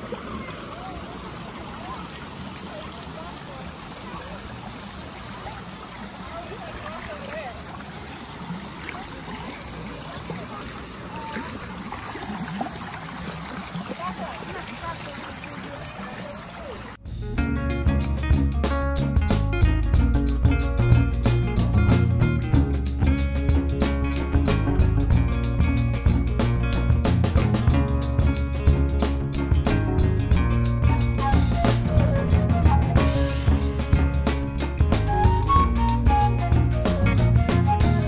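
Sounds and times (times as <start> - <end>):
faint voices: 0.0 - 17.0
music with guitar and drums: 17.0 - 38.0.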